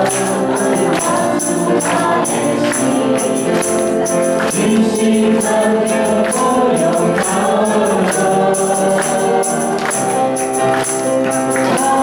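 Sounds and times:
high-pitched percussion beat: 0.0 - 12.0
people singing in harmony: 0.0 - 12.0.

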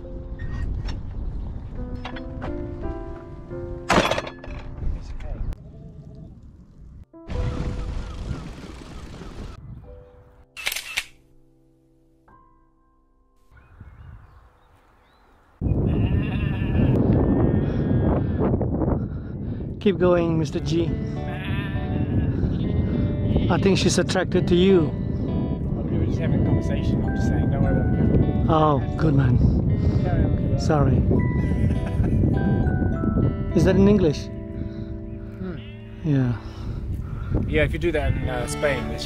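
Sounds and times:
sheep bleating loudly: 15.8 - 18.1, 21.2 - 23.8
music of held notes: 38.1 - 39.0.

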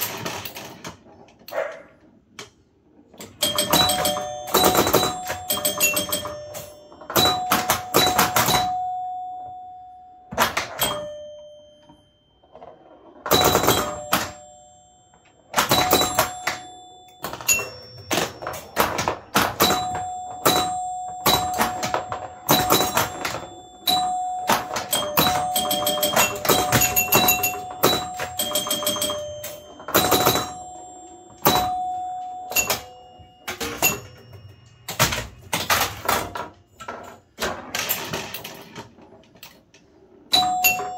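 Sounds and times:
pinball scoring chimes: 3.0 - 40.9.

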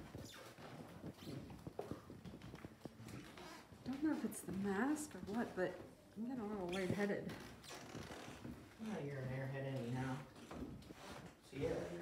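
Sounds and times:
footsteps on hardwood floor: 0.0 - 12.0.

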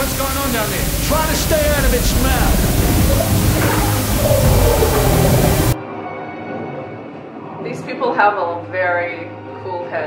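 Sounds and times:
film soundtrack music: 0.0 - 9.9
rumbling action sound effects: 0.1 - 5.8.

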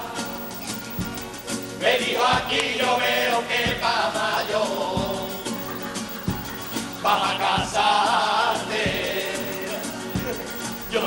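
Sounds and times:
male chorus singing: 1.8 - 5.6, 7.0 - 11.0.

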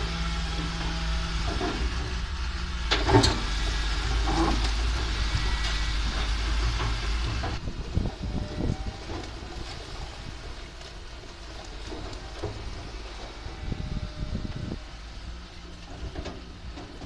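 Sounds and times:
excavator diesel engine running: 0.0 - 17.0.

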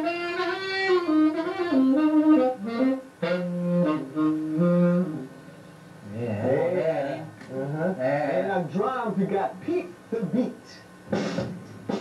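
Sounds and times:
tenor saxophone solo: 0.0 - 5.4.

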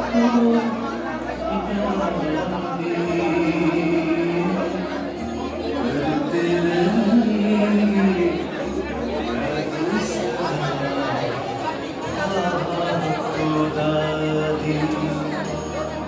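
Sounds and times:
background music: 0.0 - 16.0
crowd chattering: 0.0 - 16.0.

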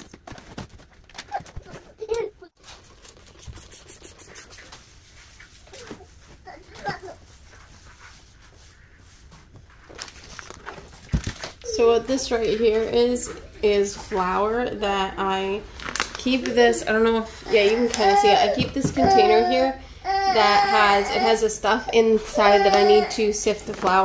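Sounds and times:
counter being wiped: 2.6 - 9.9.

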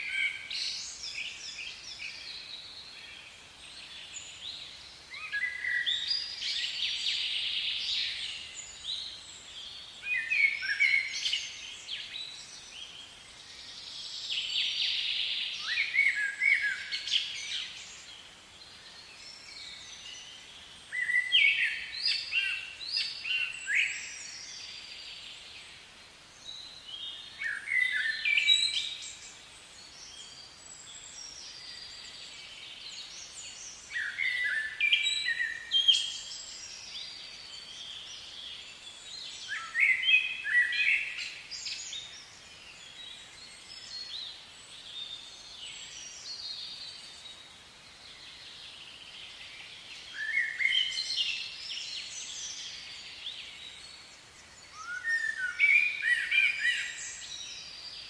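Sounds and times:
faint outdoor background: 0.0 - 58.0
songbirds chirping and whistling: 0.0 - 58.0.

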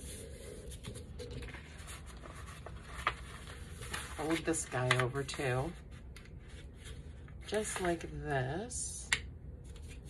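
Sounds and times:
paper rustling and rubbing: 0.0 - 5.1.

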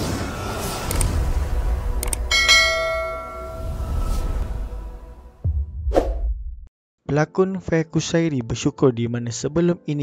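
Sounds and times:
notification bell chime: 2.3 - 4.1.

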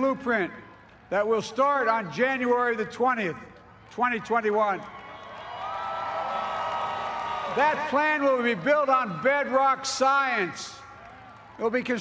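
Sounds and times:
audience cheering: 4.8 - 12.0.

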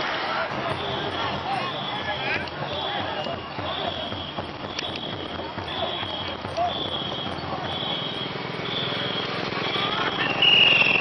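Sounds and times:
voices calling out: 0.0 - 11.0
rhythmic paddle stroke thuds: 0.4 - 11.0.

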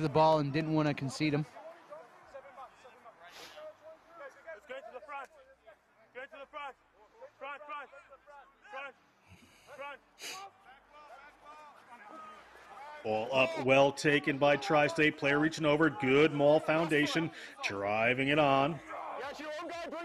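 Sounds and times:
players shouting calls: 9.7 - 20.0.

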